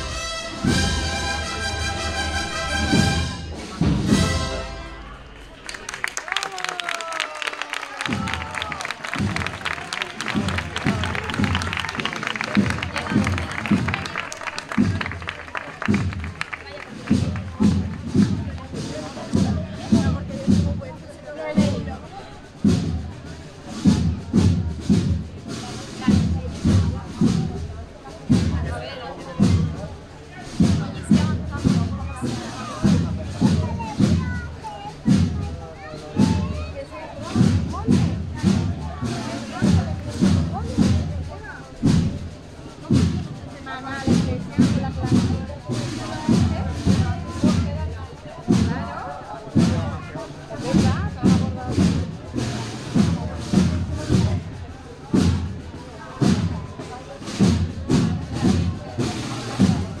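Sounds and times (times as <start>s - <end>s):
band playing slow march: 0.0s - 60.0s
crowd chatter: 0.0s - 60.0s
heavy bass drum beat: 8.0s - 22.0s, 22.6s - 29.9s, 30.5s - 35.6s, 36.2s - 60.0s.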